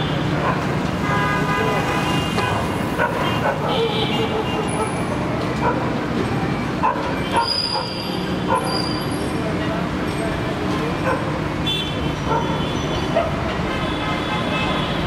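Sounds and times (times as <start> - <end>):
vehicles passing: 0.0 - 15.0.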